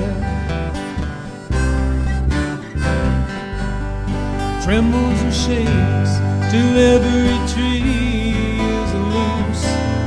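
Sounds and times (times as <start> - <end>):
strummed acoustic guitar: 0.0 - 10.0
sustained low notes: 0.0 - 10.0.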